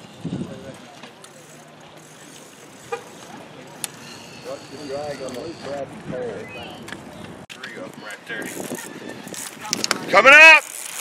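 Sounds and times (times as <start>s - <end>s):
outdoor background noise: 0.0s - 11.0s
distant people talking: 0.1s - 10.3s.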